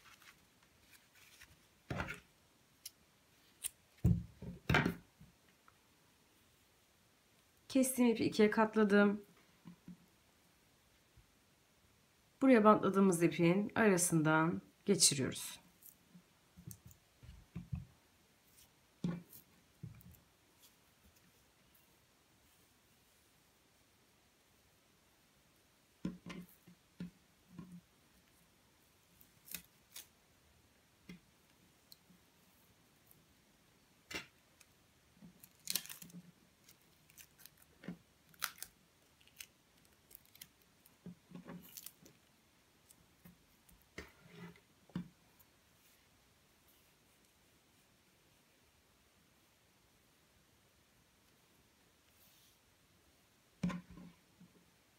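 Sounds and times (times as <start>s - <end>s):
twine rustling: 0.0s - 2.3s, 34.0s - 47.9s.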